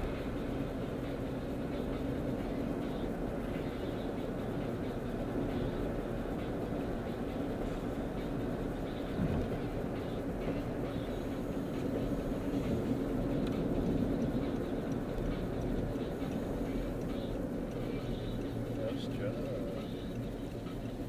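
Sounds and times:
car road and engine noise: 0:00.0 - 0:21.0.

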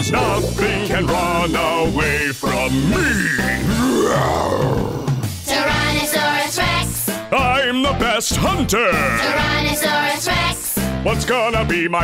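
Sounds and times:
backing music: 0:00.0 - 0:12.0
cartoon dinosaur roar: 0:02.8 - 0:05.2.

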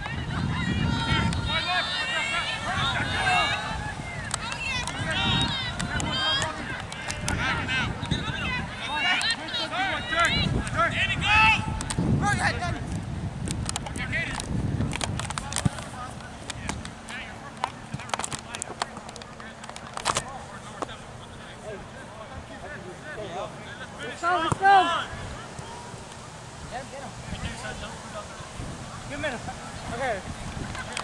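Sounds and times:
wind rumble on microphone: 0:00.0 - 0:08.9, 0:10.1 - 0:17.0, 0:27.2 - 0:31.0
players and spectators shouting: 0:00.0 - 0:12.7, 0:23.6 - 0:26.5.

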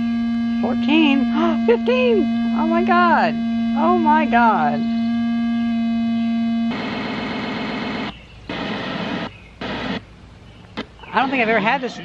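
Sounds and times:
harsh broken-up buzz: 0:00.0 - 0:10.1
tv speaker buzzing tone: 0:00.0 - 0:10.1.

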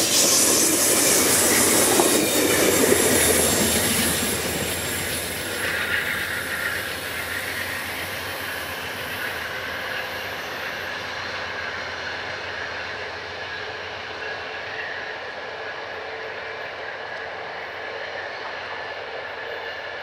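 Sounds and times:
high wheel squeal: 0:00.0 - 0:12.2
passenger train rolling past: 0:00.0 - 0:20.0.

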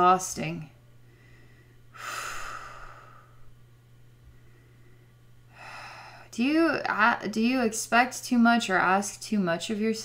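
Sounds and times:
low electrical hum: 0:00.0 - 0:10.0
breath in: 0:01.1 - 0:03.5.

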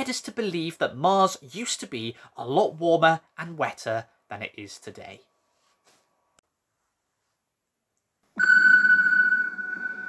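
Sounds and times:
high steady synthesized tone: 0:08.4 - 0:10.0.

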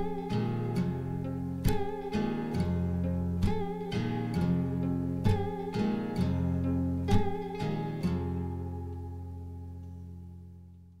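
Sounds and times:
acoustic guitar chord ringing: 0:00.0 - 0:10.9.

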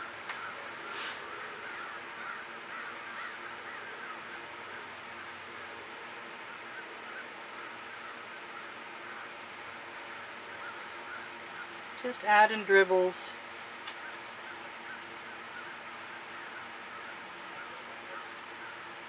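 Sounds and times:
bird calling: 0:00.0 - 0:06.0, 0:06.6 - 0:12.8, 0:13.8 - 0:19.0
faint steady hum: 0:00.0 - 0:19.0.

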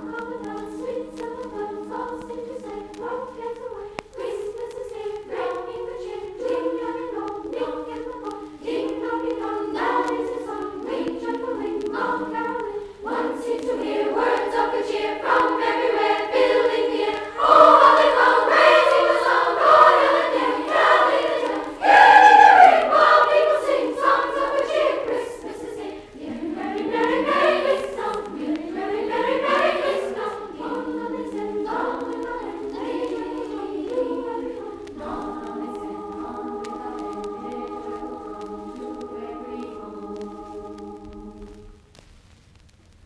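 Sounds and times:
choir singing on vinyl record: 0:00.0 - 0:43.0.

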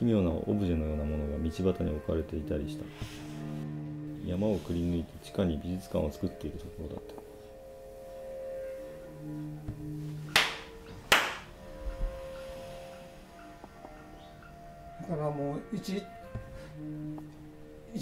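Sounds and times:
soft sustained musical tones: 0:00.0 - 0:18.0
man clapping hands: 0:10.3 - 0:11.5.

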